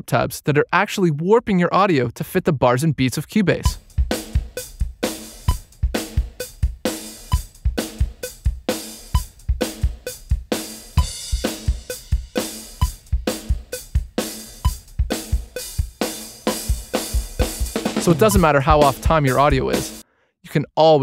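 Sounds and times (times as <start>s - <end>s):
drum kit loop: 3.6s - 20.0s.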